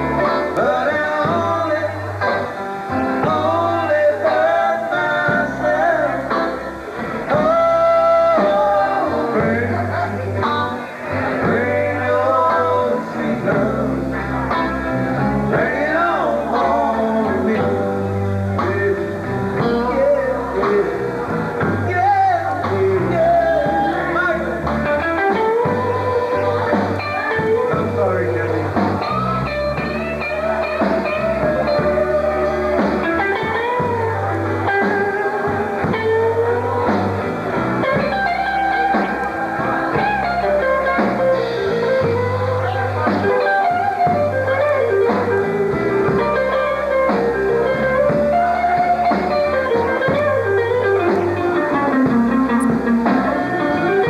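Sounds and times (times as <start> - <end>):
live blues band playing: 0.0 - 54.0.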